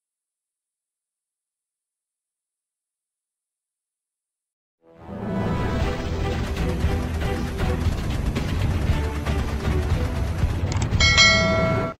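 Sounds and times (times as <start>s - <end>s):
bright bell chime: 11.0s - 12.0s.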